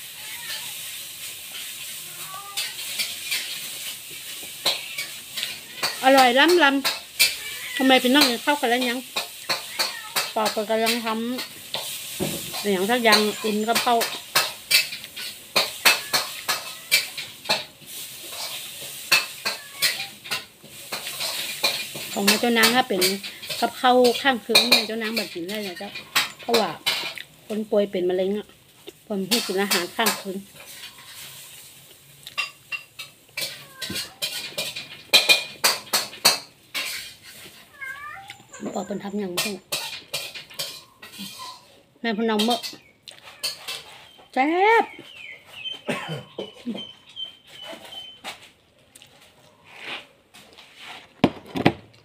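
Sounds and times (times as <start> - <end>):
cat meowing: 0.0 - 1.0, 2.0 - 3.0, 4.5 - 6.1, 7.2 - 8.2, 9.5 - 10.4, 15.6 - 17.2, 19.1 - 20.4, 33.4 - 34.4, 37.6 - 39.0
person chewing food: 43.0 - 43.3, 48.6 - 49.6.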